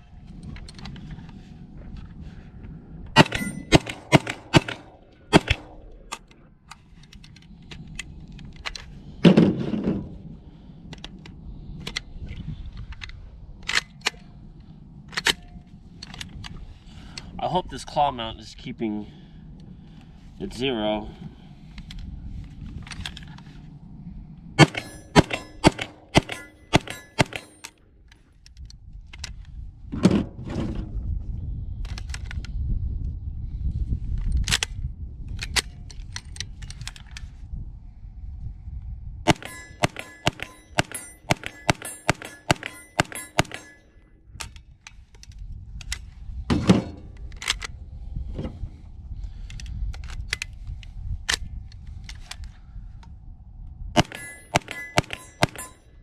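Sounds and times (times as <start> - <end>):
carbine gunshots: 3.2 - 6.1, 24.6 - 27.7, 39.3 - 43.8, 54.0 - 55.8.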